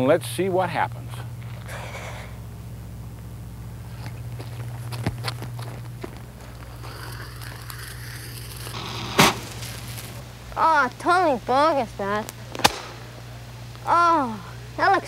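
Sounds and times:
steady low hum: 0.0s - 15.0s
firework crackles and pops: 6.6s - 10.6s, 12.2s - 13.9s
firework hissing: 6.6s - 10.6s, 11.5s - 13.8s.

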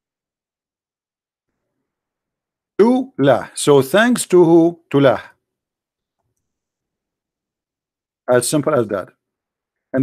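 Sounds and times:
man's voice: 2.8s - 5.4s, 8.3s - 9.1s.

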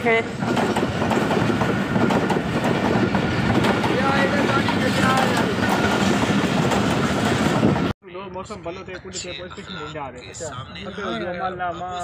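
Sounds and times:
train wheels clattering on rails: 0.1s - 7.9s.

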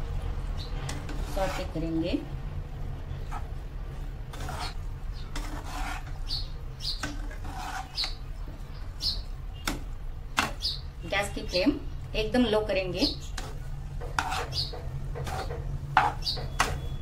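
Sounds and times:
spatula scraping frying pan: 0.8s - 1.8s, 4.3s - 8.2s, 13.4s - 17.0s.

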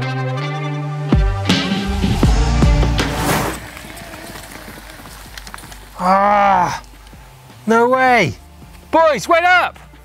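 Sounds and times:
background music: 0.0s - 10.0s
whoosh effect: 1.6s - 3.9s
bike tyres on dirt trail: 2.7s - 10.0s.

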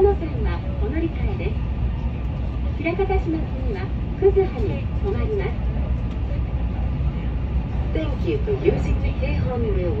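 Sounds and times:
train running: 0.0s - 10.0s.

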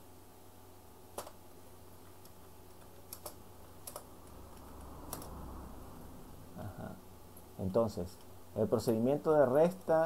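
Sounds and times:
low steady hum: 0.0s - 10.0s
computer keyboard keystrokes: 1.2s - 1.4s, 2.0s - 5.4s.

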